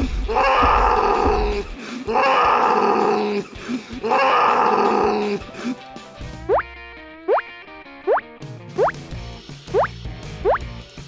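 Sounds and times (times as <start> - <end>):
cartoon monster growling: 0.3 - 5.4.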